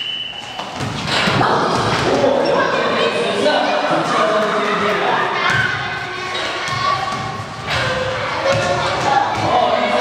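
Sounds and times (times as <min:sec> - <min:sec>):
children's voices: 0:01.3 - 0:10.0.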